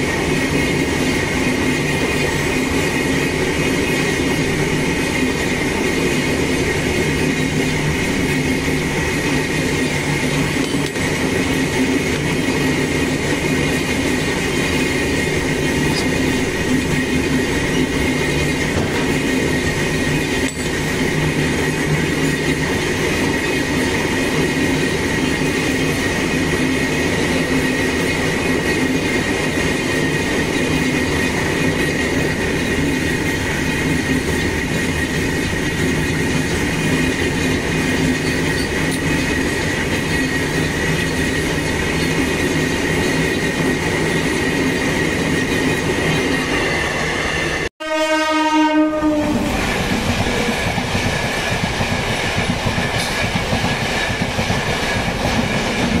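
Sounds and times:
train wheels rumbling on rail: 0:00.0 - 0:56.0
train horn: 0:47.8 - 0:49.7.

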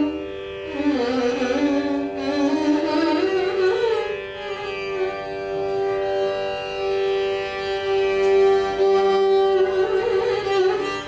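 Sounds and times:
violin: 0:00.0 - 0:11.0.

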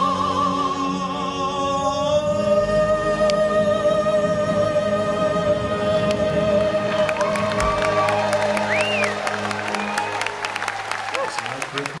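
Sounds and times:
audience applause and cheering: 0:06.1 - 0:12.0.

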